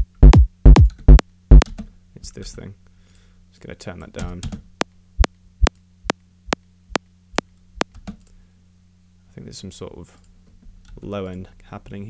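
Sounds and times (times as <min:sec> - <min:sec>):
synthesized kick drum loop: 0:00.0 - 0:01.7.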